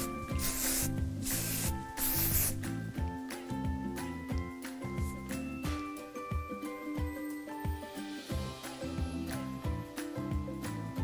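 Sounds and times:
hairspray hissing: 0.0s - 2.7s
background music with beat: 0.0s - 11.0s.

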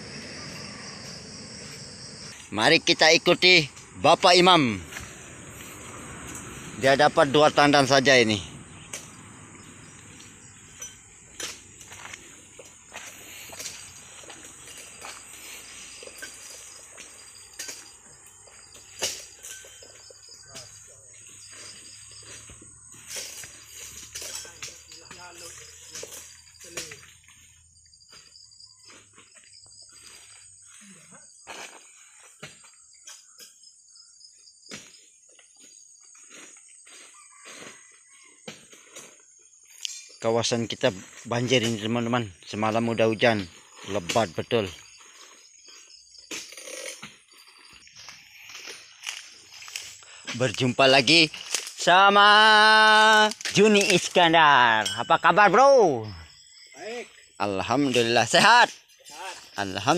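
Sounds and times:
insect chorus: 0.0s - 59.9s.

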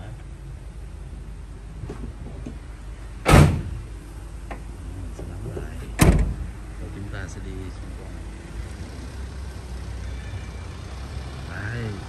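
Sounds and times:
van door thumping shut: 3.2s - 3.8s, 6.0s - 6.5s.

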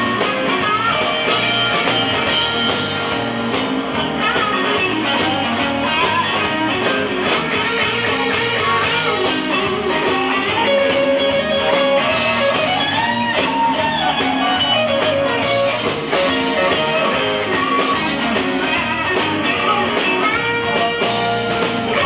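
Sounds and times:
blues band playing: 0.0s - 22.0s
electric guitar bent notes: 0.0s - 22.0s.

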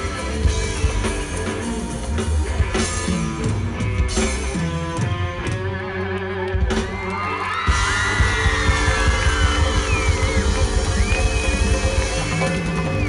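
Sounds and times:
pop-rock band playing: 0.0s - 13.0s
crowd whooping: 5.8s - 13.0s.

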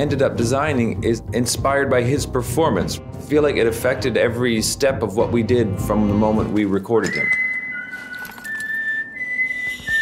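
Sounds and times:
person whistling: 7.0s - 10.0s.

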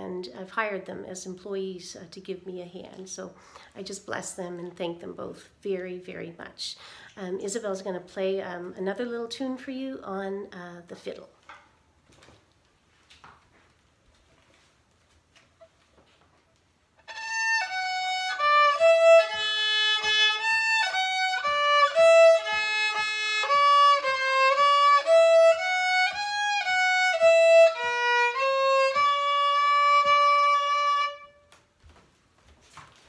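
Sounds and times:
solo violin playing a tune: 17.0s - 31.5s.

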